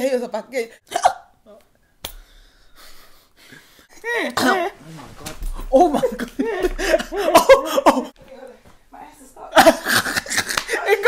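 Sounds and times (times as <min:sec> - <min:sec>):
hiccup-like voice sound: 0:00.9 - 0:01.6.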